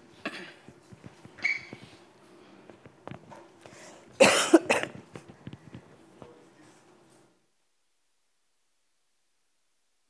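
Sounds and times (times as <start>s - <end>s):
person coughing: 0.2s - 0.6s, 4.2s - 5.0s.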